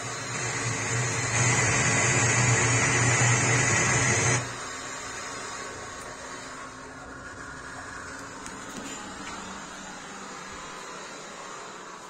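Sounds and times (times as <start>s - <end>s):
steady hiss: 0.0s - 8.4s.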